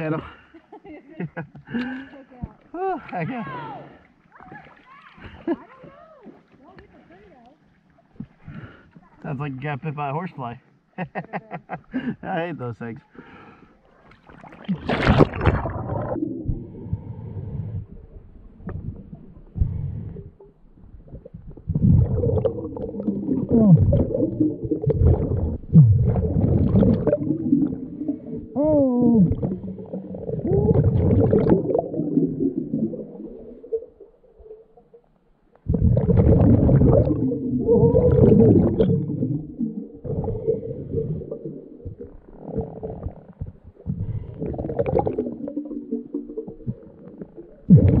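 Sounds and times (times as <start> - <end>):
exhaled bubbles rushing underwater: 14.2 - 35.0, 35.6 - 48.0.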